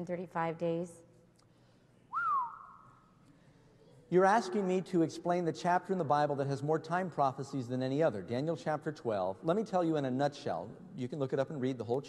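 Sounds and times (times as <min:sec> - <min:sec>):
person whistling: 0:02.1 - 0:03.1.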